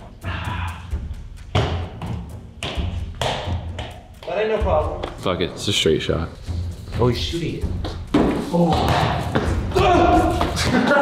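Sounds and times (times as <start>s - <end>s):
basketball bouncing on hard floor: 1.5s - 4.0s, 7.8s - 10.8s.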